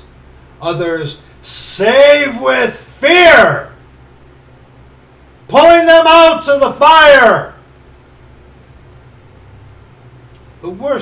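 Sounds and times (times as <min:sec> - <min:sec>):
faint steady hiss: 0:00.0 - 0:11.0
low hum: 0:00.0 - 0:11.0.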